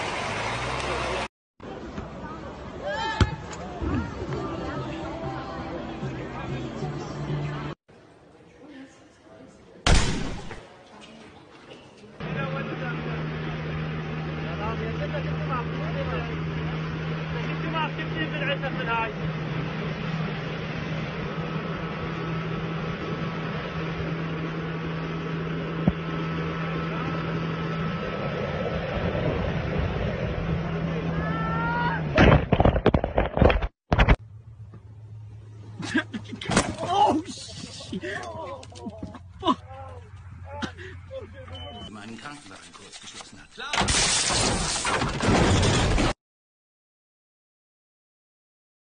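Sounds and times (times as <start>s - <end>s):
steady low hum: 12.2s - 31.6s
boat motor droning: 12.2s - 32.2s
voices calling out: 35.6s - 42.9s.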